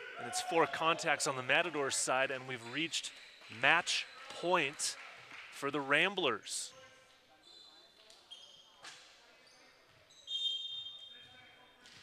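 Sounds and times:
referee's whistle blast: 10.3s - 11.1s.

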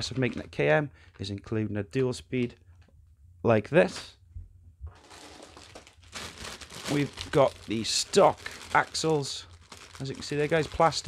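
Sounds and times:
plastic bag crinkling: 4.9s - 11.0s.

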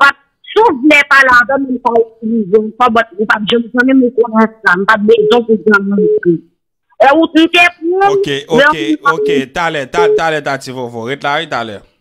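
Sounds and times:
person talking: 7.0s - 11.8s.

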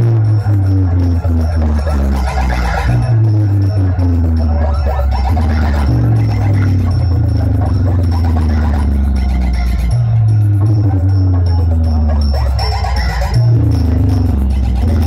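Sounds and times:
loud electronic music: 0.0s - 15.0s.

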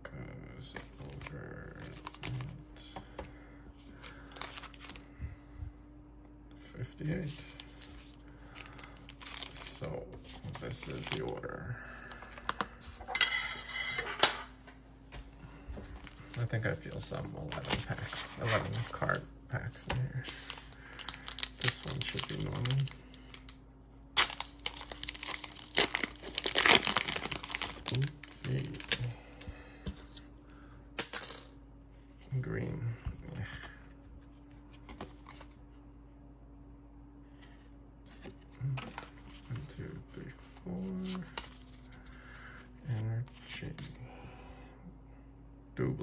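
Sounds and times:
cards rustling: 0.6s - 5.1s, 7.2s - 12.9s, 15.8s - 29.1s, 33.0s - 35.7s, 37.3s - 44.0s
foil wrapper tearing and crinkling: 8.5s - 9.8s, 20.0s - 29.1s.

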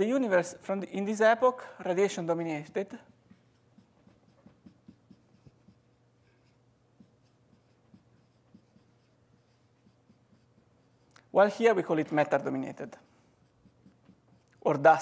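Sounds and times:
marker writing on whiteboard: 2.1s - 15.0s.

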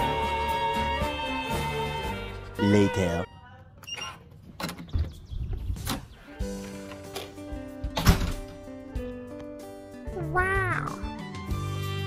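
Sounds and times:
door lock electronic beep: 3.8s - 4.2s.

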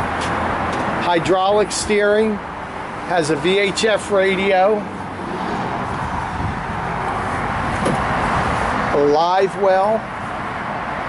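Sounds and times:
road traffic rushing: 0.0s - 11.0s.

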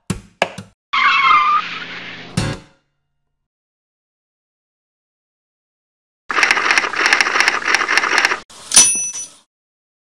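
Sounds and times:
screeching sound effect: 1.0s - 2.4s.

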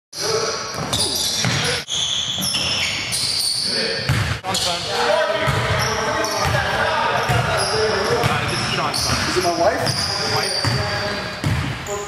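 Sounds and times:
sneakers squeaking on floor: 0.2s - 12.0s
players' voices: 3.6s - 12.0s.

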